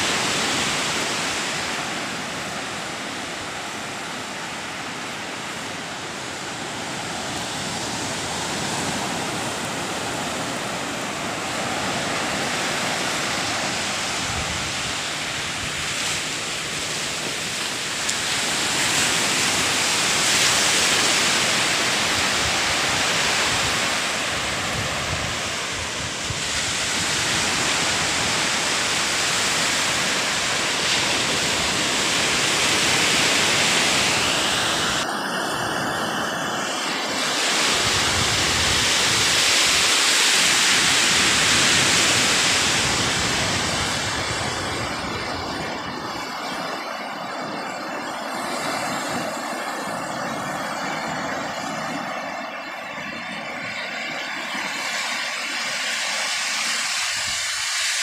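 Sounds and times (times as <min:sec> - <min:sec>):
waves breaking on beach: 0:00.0 - 0:58.0.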